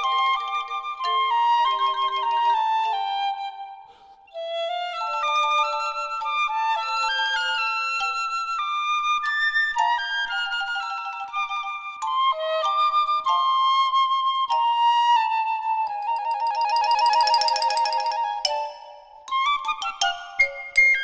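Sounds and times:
piccolo melody: 0:00.0 - 0:21.0
xylophone strikes: 0:17.1 - 0:19.3.

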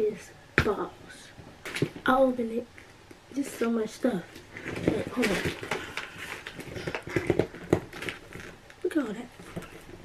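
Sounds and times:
plastic bag crackling: 0:04.4 - 0:10.0.

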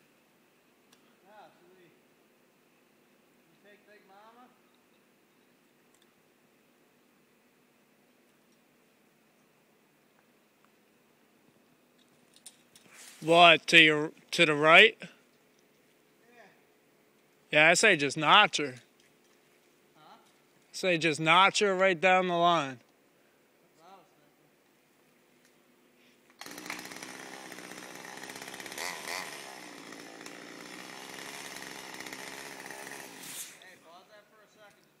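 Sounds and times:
chainsaw cutting: 0:26.3 - 0:33.8.

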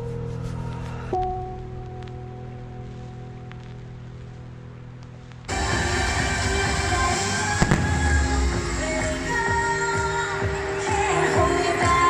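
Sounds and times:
fireworks going off: 0:05.3 - 0:10.9
loud show music: 0:05.5 - 0:12.0
sharp firework bang: 0:07.6 - 0:08.7.

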